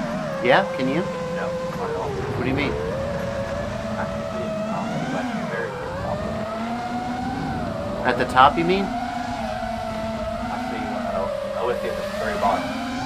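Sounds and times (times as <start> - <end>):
drone motors whining: 0.0 - 13.0.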